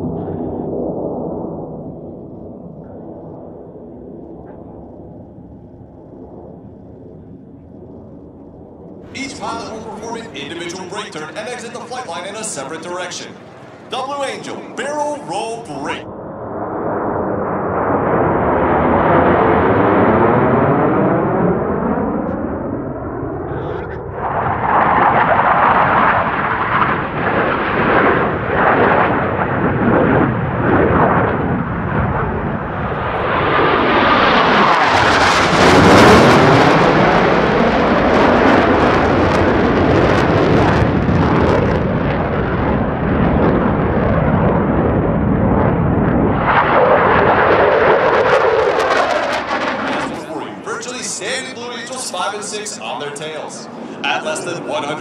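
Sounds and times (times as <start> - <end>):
jets flying low overhead: 0.0 - 55.0.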